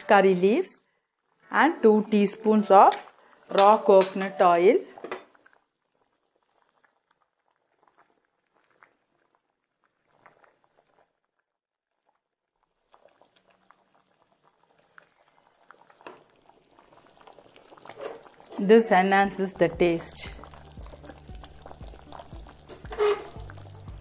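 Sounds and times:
curry bubbling in a pot: 0:02.8 - 0:04.0, 0:04.8 - 0:24.0.

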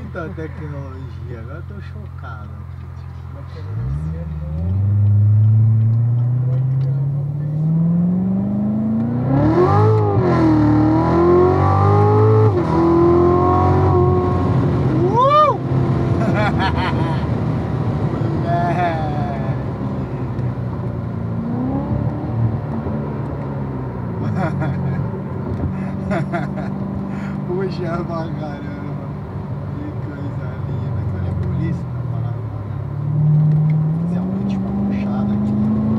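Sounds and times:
car engine revving: 0:03.6 - 0:35.9.

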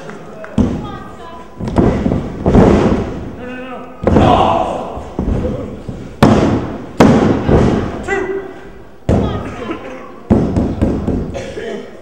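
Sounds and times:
wrestlers thudding on ring mat: 0:01.6 - 0:03.3, 0:04.0 - 0:08.0.

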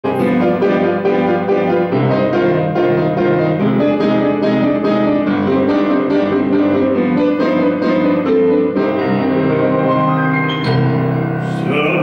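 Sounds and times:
grand piano playing chords: 0:00.0 - 0:12.0.

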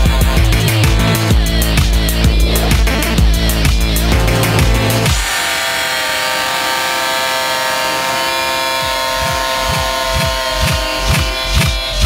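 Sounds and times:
electronic kick drum: 0:00.0 - 0:05.3, 0:08.6 - 0:12.0
buzzy synth chords: 0:00.0 - 0:05.5, 0:06.3 - 0:12.0.

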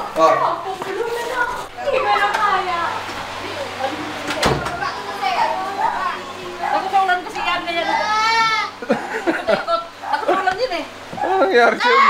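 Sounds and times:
people talking: 0:00.0 - 0:08.7, 0:09.5 - 0:12.0.

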